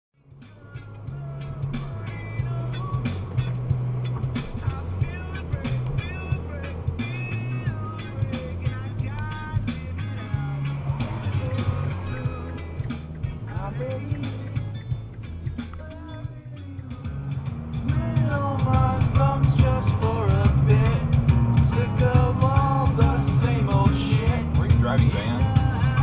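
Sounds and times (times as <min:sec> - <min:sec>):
heavy bass line: 0:00.2 - 0:26.0
song on car stereo: 0:00.2 - 0:26.0
person singing: 0:00.3 - 0:03.6, 0:04.4 - 0:14.9, 0:17.8 - 0:26.0
steady drumbeat: 0:00.4 - 0:26.0.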